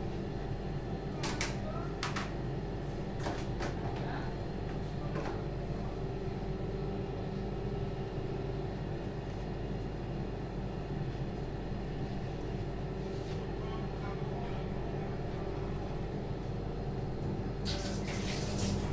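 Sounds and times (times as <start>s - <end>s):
low machine hum: 0.0s - 18.9s.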